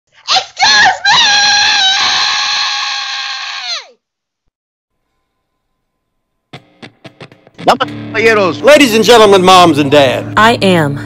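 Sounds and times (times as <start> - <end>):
woman screaming: 0.3 - 4.0.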